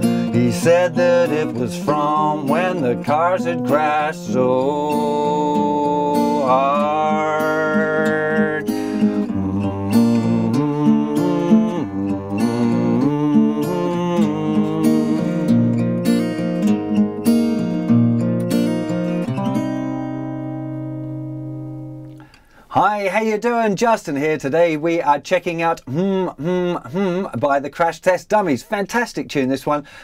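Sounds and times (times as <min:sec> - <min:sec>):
finger-picked acoustic guitar: 0:00.0 - 0:22.6, 0:24.6 - 0:27.6.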